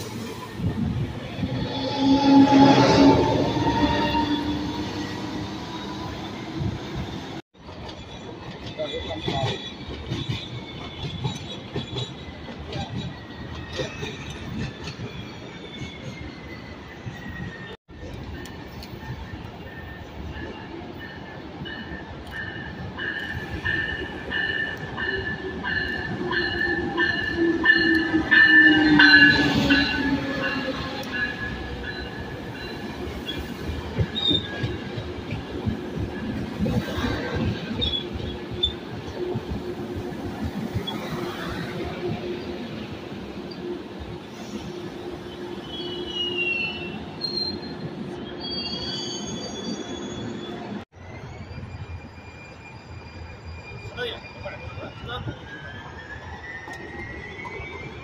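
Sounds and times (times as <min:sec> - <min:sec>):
high wheel squeal: 0:00.0 - 0:07.4, 0:08.8 - 0:58.0
train coaches rolling: 0:00.0 - 0:58.0
train passing: 0:00.0 - 0:58.0.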